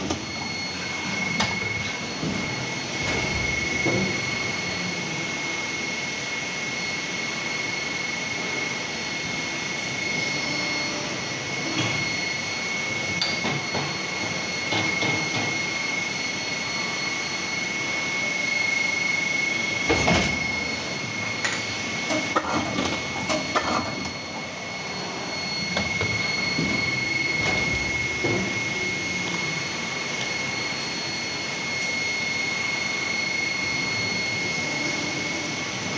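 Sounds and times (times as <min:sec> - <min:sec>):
machine hum and hiss: 0:00.0 - 0:35.9
thin high whine: 0:00.0 - 0:35.9.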